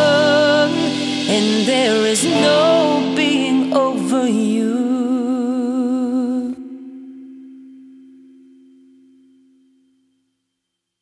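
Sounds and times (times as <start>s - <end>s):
sung note with vibrato: 0.0s - 5.5s
guitar: 0.0s - 10.5s.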